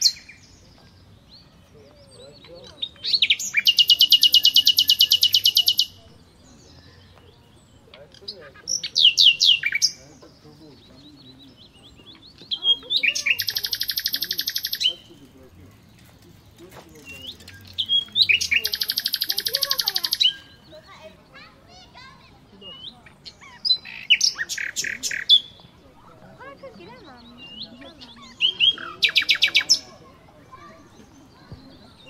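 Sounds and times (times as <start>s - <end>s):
songbird fast trill: 2.1s - 7.0s, 10.8s - 15.4s, 16.6s - 25.6s, 27.1s - 32.0s
songbird whistled notes: 11.6s - 15.0s, 17.1s - 20.8s.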